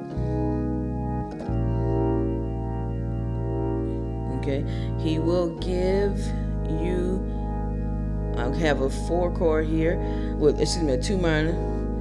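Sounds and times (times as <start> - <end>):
held bass note: 0.0 - 12.0
organ playing gospel chords: 0.0 - 12.0.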